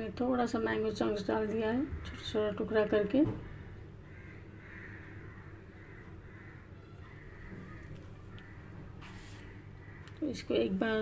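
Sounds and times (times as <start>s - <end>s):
low steady hum: 0.0s - 11.0s
bird calling faintly: 3.5s - 10.4s.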